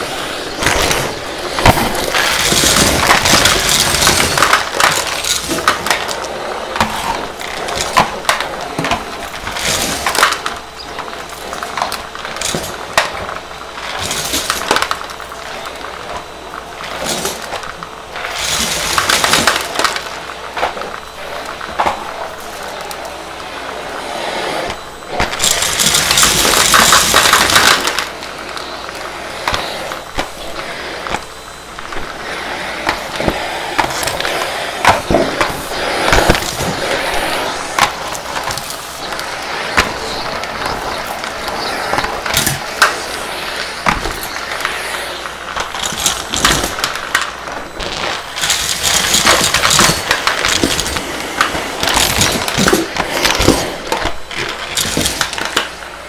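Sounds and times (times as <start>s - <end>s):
vacuum cleaner suction: 0.0s - 56.0s
coins and debris rattling: 2.2s - 6.0s, 25.3s - 28.1s, 45.7s - 53.6s.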